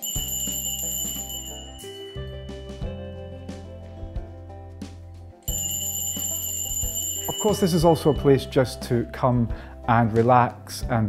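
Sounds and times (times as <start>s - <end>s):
bell ringing: 0.0s - 3.4s, 5.5s - 8.8s
low background music chords: 0.0s - 11.0s.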